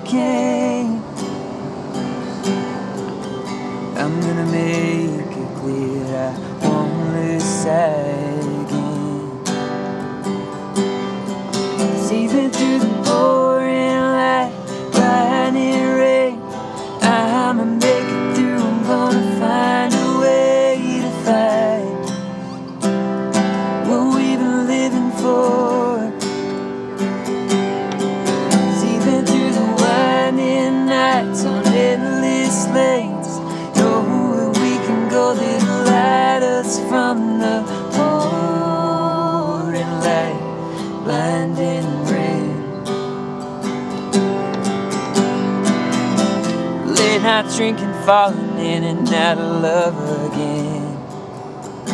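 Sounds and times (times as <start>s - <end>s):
person singing: 0.0s - 1.2s, 4.0s - 9.8s, 11.8s - 22.4s, 23.6s - 26.6s, 28.3s - 42.9s, 46.8s - 51.1s
acoustic guitar strummed: 0.0s - 51.9s.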